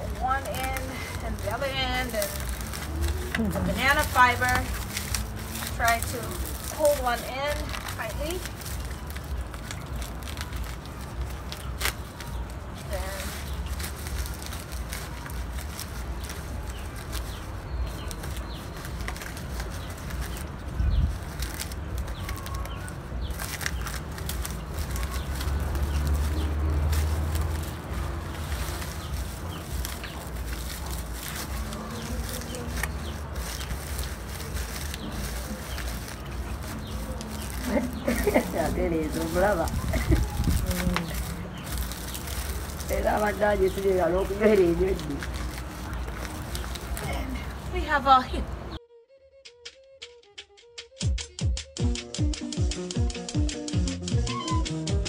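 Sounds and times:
dry leaves rustling and crackling: 0.0 - 48.8.

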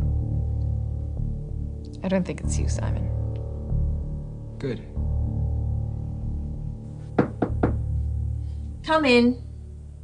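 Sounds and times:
low music underscore: 0.0 - 10.0
knocks on a door: 7.1 - 8.0.

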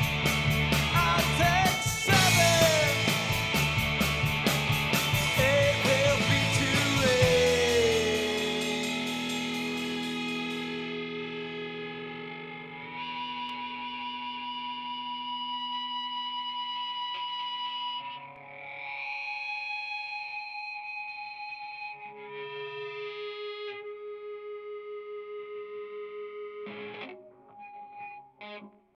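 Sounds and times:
distorted electric guitar: 0.0 - 29.0.

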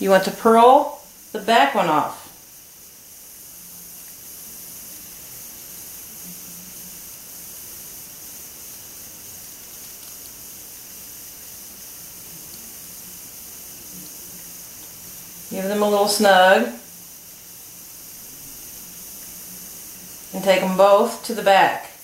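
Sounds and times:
recording hiss: 0.0 - 22.0.

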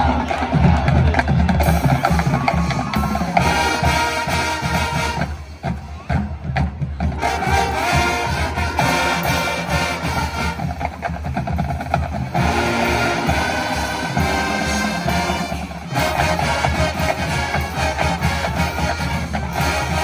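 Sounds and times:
drumline percussion: 0.0 - 20.0
marching band brass: 0.0 - 20.0.

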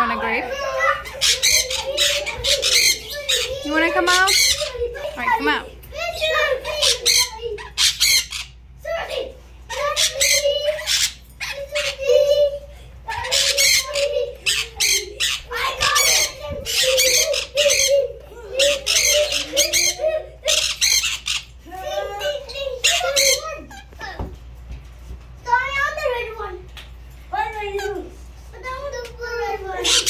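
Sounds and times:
low warbling chatter: 0.0 - 24.2
parrots squawking: 0.0 - 24.2, 29.4 - 30.0.

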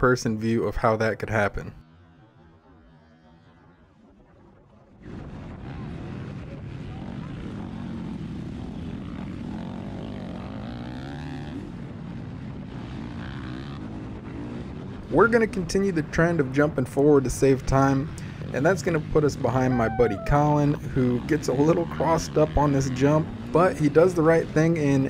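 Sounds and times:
motocross bike engine revving: 7.4 - 16.6, 17.2 - 25.0
track noise: 15.1 - 25.0.

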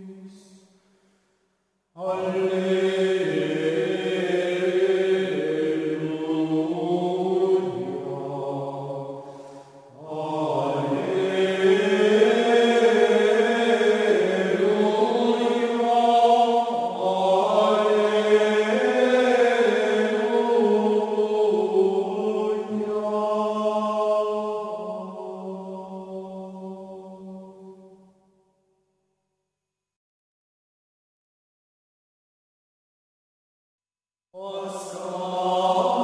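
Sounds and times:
voices chanting slowly: 2.0 - 28.1, 34.4 - 36.0.

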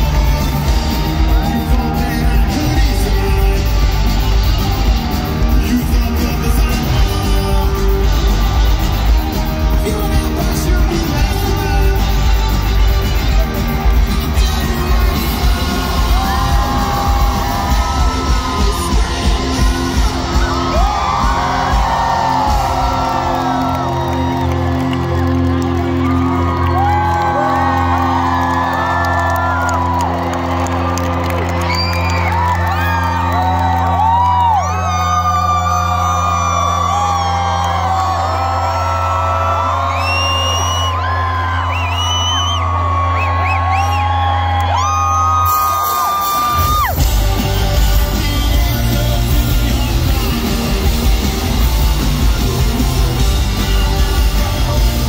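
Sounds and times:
drumbeats: 0.0 - 34.6, 42.6 - 55.0
crowd whooping and shouting: 0.0 - 55.0
rock band playing live: 0.0 - 55.0.

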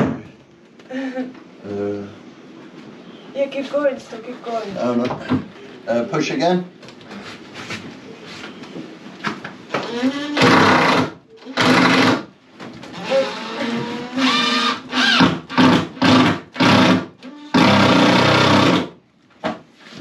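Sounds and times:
cordless drill driving screws: 13.0 - 18.8.

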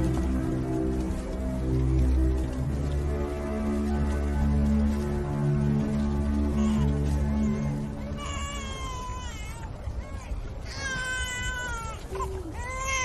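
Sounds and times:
music: 0.0 - 13.0
high drawn-out wailing cries: 6.4 - 13.0.

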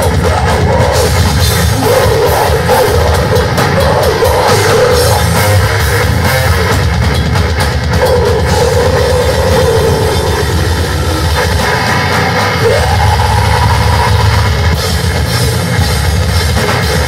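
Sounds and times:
metal band playing: 0.0 - 17.0.

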